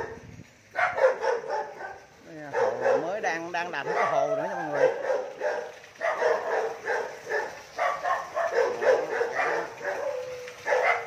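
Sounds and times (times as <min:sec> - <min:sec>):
dog barking: 0:00.0 - 0:11.0.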